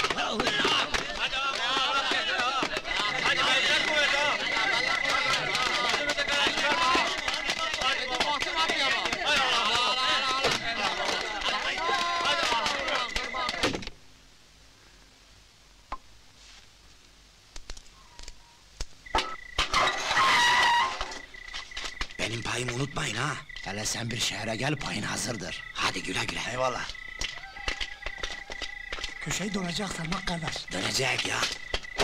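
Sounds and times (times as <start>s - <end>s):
crowd of men shouting and cheering: 0.0s - 13.7s.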